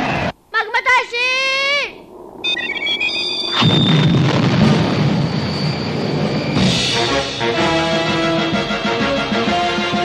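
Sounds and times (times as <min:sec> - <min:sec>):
high electronic tones: 0:02.4 - 0:07.6
high held tone: 0:02.4 - 0:08.2
rocket blast-off roar: 0:03.5 - 0:08.1.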